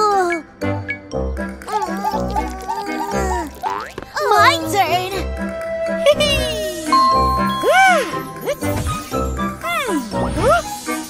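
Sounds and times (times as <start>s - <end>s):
cartoon character voice sounds: 1.7s - 5.0s
sparkly chime effect: 6.8s - 8.4s.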